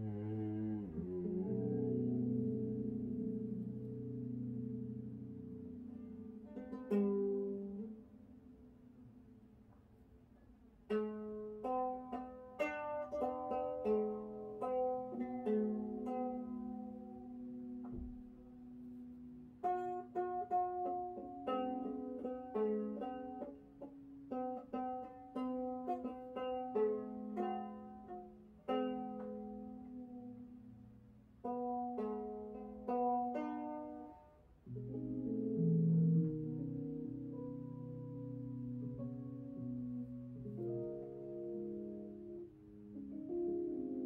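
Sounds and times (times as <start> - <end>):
plucked string melody: 0.0 - 44.0.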